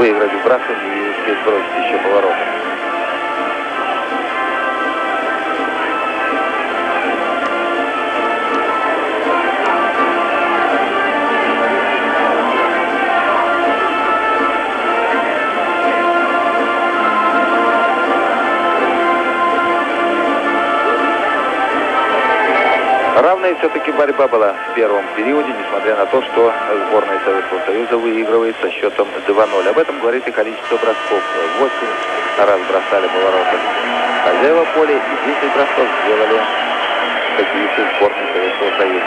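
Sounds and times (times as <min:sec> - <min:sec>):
music with held chords: 0:00.0 - 0:28.4, 0:29.1 - 0:39.0.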